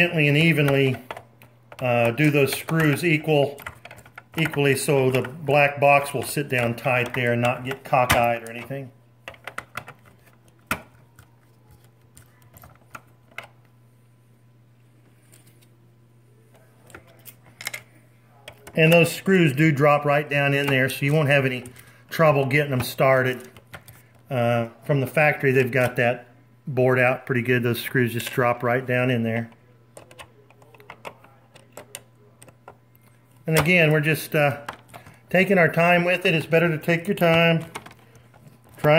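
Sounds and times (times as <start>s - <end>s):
low steady hum: 0.0s - 38.9s.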